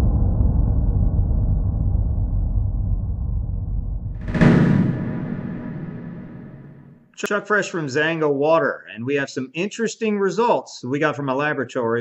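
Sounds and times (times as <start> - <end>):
deep gong-like boom: 4.2 - 7.0.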